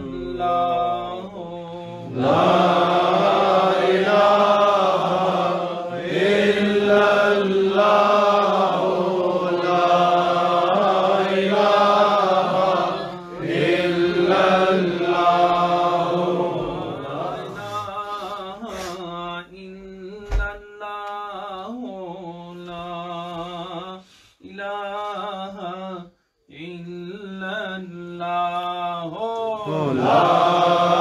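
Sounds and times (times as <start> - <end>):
men chanting: 0.0 - 20.5, 21.5 - 31.0.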